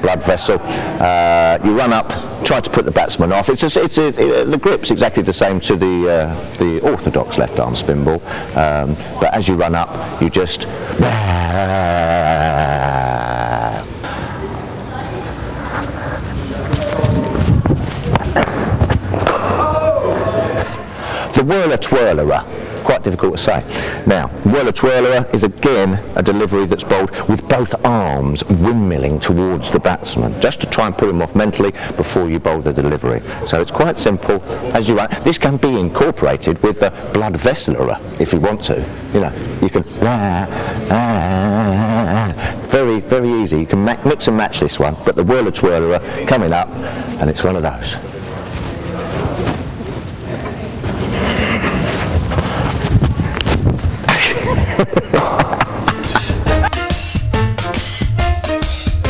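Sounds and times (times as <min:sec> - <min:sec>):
noisy background: 0:00.0 - 0:59.0
man making wavering vocal noise: 0:10.8 - 0:14.1, 0:39.9 - 0:42.7
man warbling yell: 0:11.0 - 0:13.9, 0:19.4 - 0:20.7, 0:40.2 - 0:42.4.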